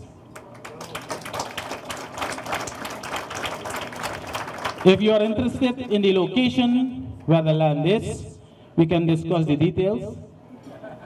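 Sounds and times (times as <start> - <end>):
audience applauding: 0.3 - 5.3
man speaking into a microphone: 4.8 - 10.3.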